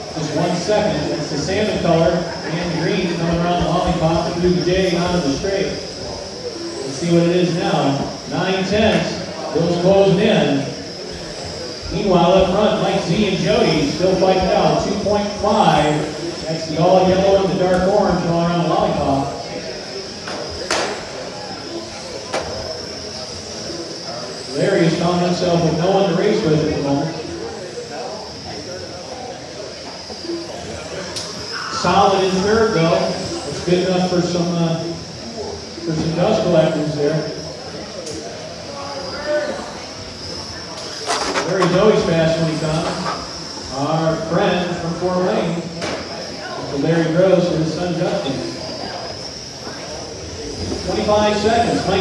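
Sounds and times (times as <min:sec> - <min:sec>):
faint background voices: 0:00.0 - 0:52.0
hiss: 0:00.0 - 0:52.0
rc car motors whining: 0:00.0 - 0:52.0.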